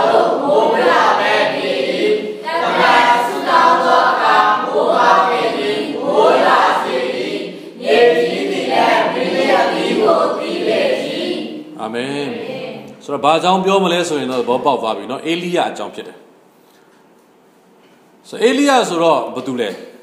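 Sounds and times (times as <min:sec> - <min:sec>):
congregation singing in unison: 0:00.0 - 0:13.0.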